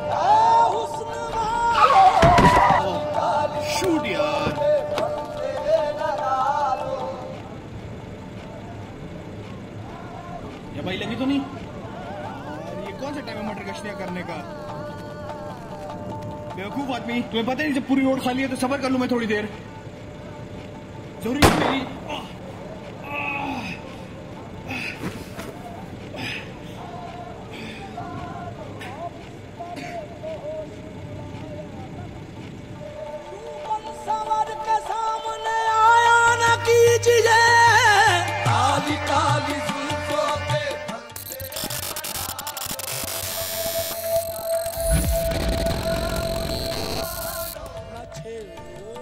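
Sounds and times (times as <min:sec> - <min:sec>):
car radio music: 0:30.3 - 0:49.0.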